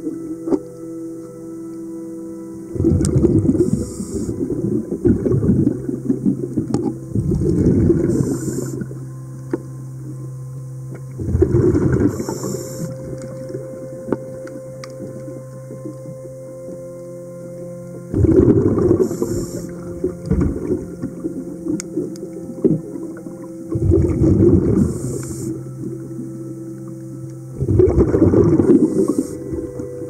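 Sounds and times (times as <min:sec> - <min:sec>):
faint hum: 0:00.0 - 0:30.0
exhaled bubbles rumbling underwater: 0:02.5 - 0:30.0
diver inhaling hiss: 0:03.6 - 0:04.5, 0:08.0 - 0:09.0, 0:11.9 - 0:13.1, 0:18.9 - 0:19.9, 0:24.8 - 0:25.7, 0:28.7 - 0:29.6.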